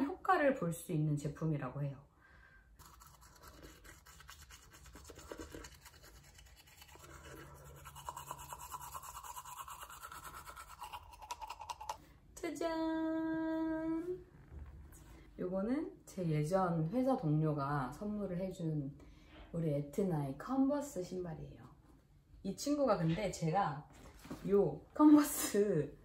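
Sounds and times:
teeth brushing: 0:02.8 - 0:12.0.

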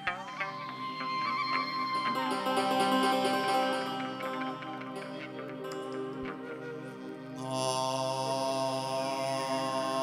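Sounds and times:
plucked lute: 0:00.0 - 0:07.2
electronic keyboard: 0:00.0 - 0:07.7
bamboo flute: 0:00.0 - 0:10.0.

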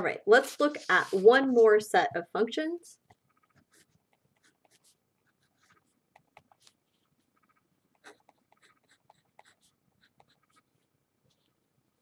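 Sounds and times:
marker scratching on paper: 0:03.1 - 0:11.5.

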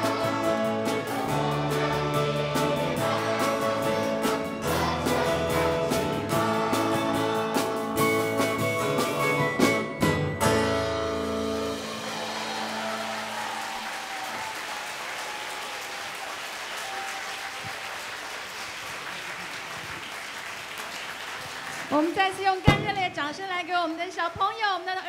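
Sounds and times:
live band and singers: 0:00.0 - 0:13.4
audience applause: 0:11.6 - 0:22.6.

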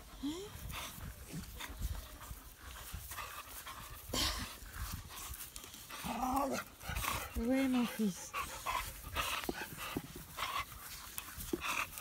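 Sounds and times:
dog panting: 0:00.0 - 0:12.0.

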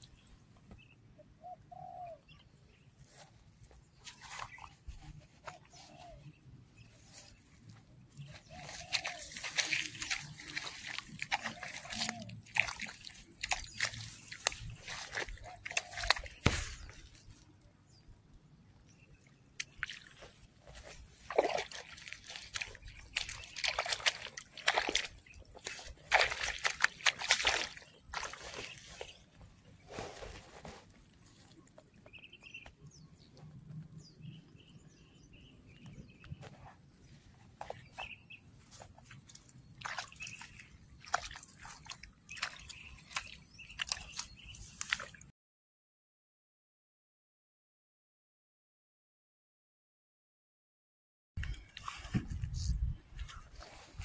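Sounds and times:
rice plants rustling: 0:03.1 - 0:17.4, 0:19.6 - 0:31.6, 0:36.4 - 0:45.2, 0:51.4 - 0:54.0.

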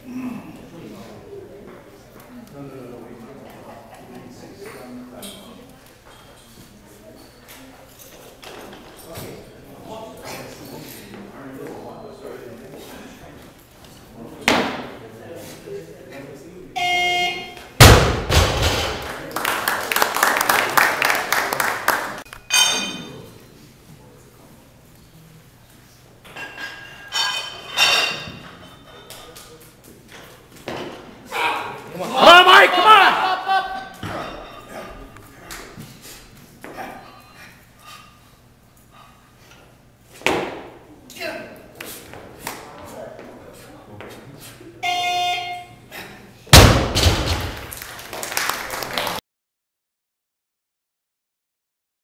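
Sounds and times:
barbell dropped with thud: 0:17.8 - 0:19.1, 0:46.5 - 0:47.7.

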